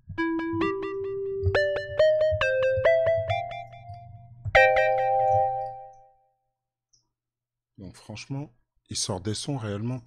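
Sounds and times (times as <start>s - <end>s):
synthesizer chords repeating: 0.1s - 6.0s.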